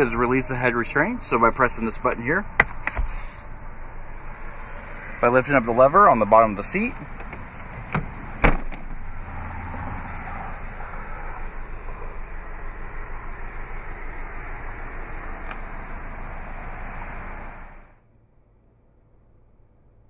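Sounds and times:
seat latch clicking: 0:07.0 - 0:09.0.

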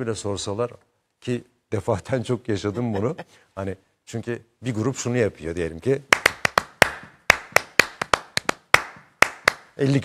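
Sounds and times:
man clapping hands: 0:06.1 - 0:09.8.

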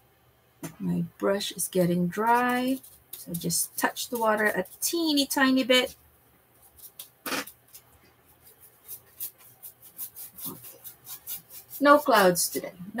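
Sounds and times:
paintbrush strokes on canvas: 0:06.6 - 0:12.8.

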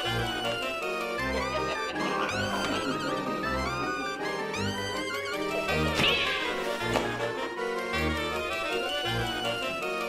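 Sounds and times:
background music: 0:00.0 - 0:10.0
cat meowing: 0:06.0 - 0:06.8.

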